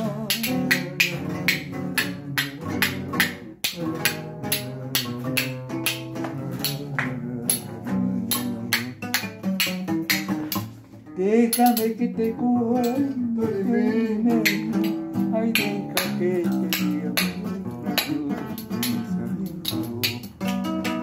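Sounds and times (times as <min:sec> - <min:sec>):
hand claps: 0:00.0 - 0:10.9, 0:11.5 - 0:12.0, 0:12.8 - 0:21.0
acoustic guitar strumming: 0:00.0 - 0:21.0.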